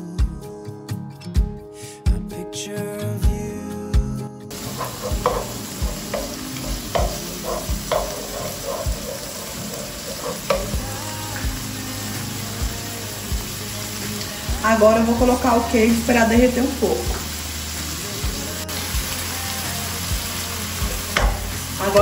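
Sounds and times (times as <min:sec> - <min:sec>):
background guitar music: 0:00.0 - 0:22.0
tomatoes sizzling in a frying pan: 0:04.5 - 0:22.0
wooden spatula knocking and scraping: 0:04.6 - 0:10.9.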